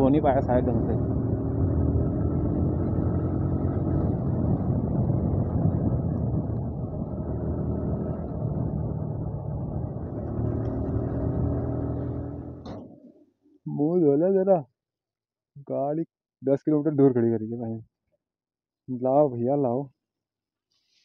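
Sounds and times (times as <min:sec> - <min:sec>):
motorcycle engine running: 0:00.0 - 0:12.8
wind rush on microphone: 0:01.5 - 0:12.0.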